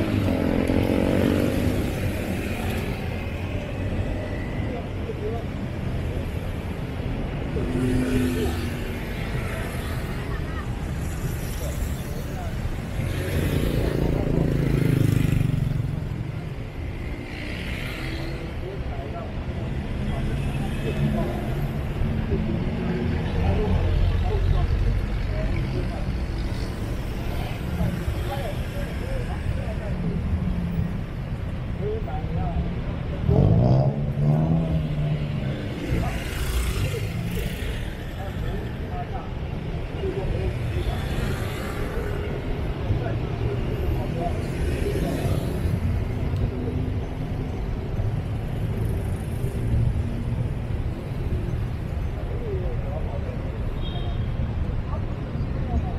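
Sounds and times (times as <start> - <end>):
cars and motorbikes driving past: 0.0 - 55.9.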